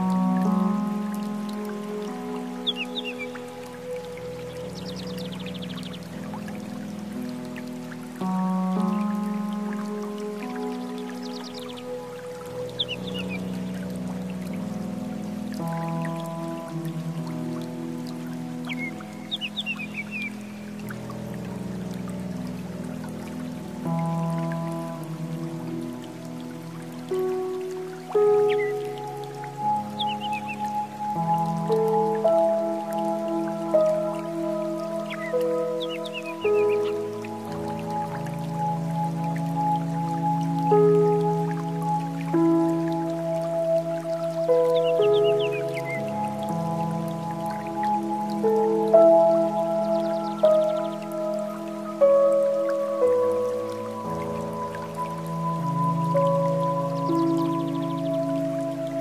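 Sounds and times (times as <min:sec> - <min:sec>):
slow meditation music: 0:00.0 - 0:59.0.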